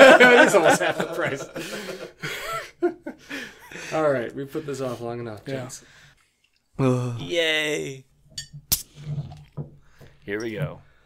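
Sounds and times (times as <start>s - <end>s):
beer bottle opening: 8.4s - 9.8s.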